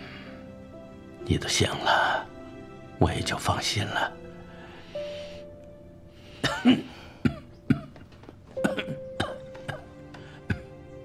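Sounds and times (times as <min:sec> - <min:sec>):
elderly man coughing: 0:06.4 - 0:08.0, 0:08.6 - 0:10.8.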